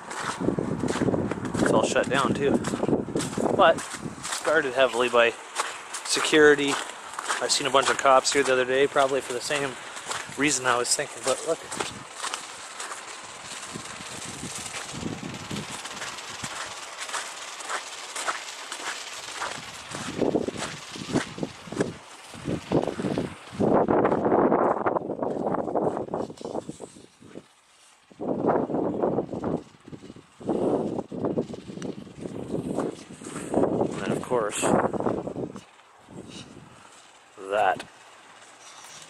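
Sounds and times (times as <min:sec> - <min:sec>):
footsteps crunching on snow: 0:00.0 - 0:28.5, 0:30.5 - 0:37.8
irregular rustling bursts: 0:00.0 - 0:39.0
steady outdoor hiss: 0:00.0 - 0:39.0.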